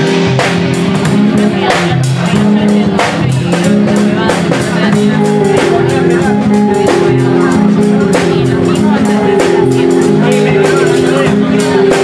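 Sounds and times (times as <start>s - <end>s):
rock band playing live: 0.0s - 12.0s.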